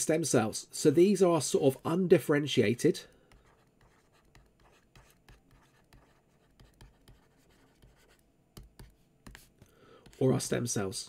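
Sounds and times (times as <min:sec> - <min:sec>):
stylus scratching on tablet screen: 0:02.9 - 0:11.0.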